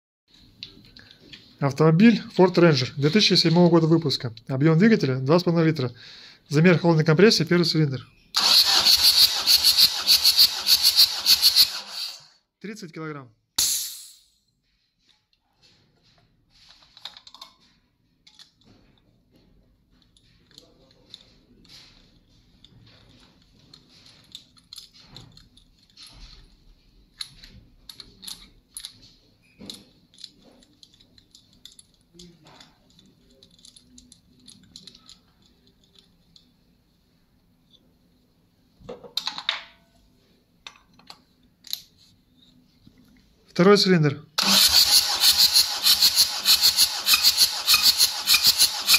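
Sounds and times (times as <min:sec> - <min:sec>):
metallic tool clicks and rattles: 0:22.6 - 0:26.6, 0:27.2 - 0:36.5, 0:44.7 - 0:48.9.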